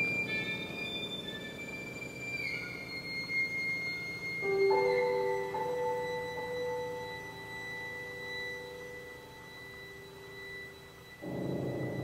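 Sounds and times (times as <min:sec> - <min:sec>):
chamber ensemble sustained notes: 0:00.0 - 0:12.0
thin high held tone: 0:00.0 - 0:12.0.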